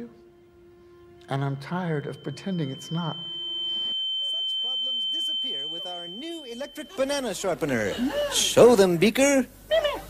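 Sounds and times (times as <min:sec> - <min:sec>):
high-pitched electronic tone: 0:01.0 - 0:08.0.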